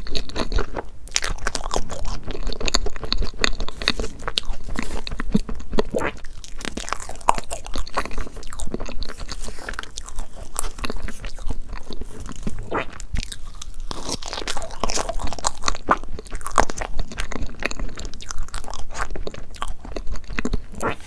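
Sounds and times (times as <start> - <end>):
chewing with mouth clicks: 0.0 - 21.0.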